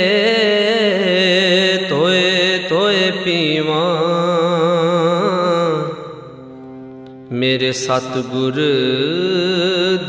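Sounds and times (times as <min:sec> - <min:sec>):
person singing with vibrato: 0:00.0 - 0:10.0.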